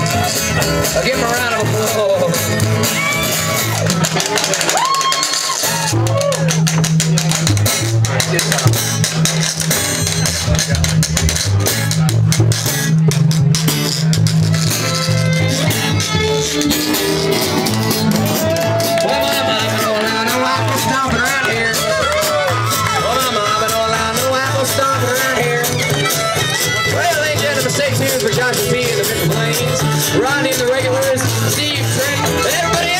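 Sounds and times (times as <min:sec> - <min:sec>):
acoustic guitar: 0:00.0 - 0:32.9
upright bass: 0:00.0 - 0:32.9
fiddle melody: 0:14.5 - 0:23.8.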